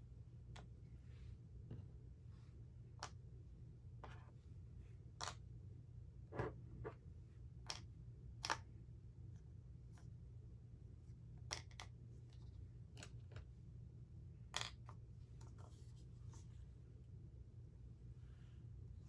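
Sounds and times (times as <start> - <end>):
packaging clicks and taps: 11.5 - 11.9.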